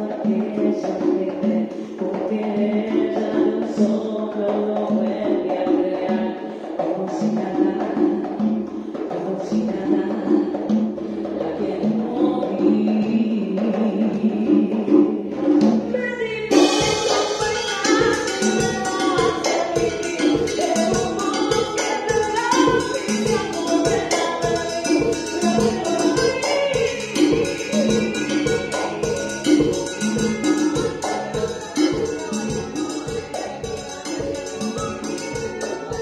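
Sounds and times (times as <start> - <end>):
live band on keyboard and drums: 0.0 - 36.0
drum hits: 16.5 - 36.0.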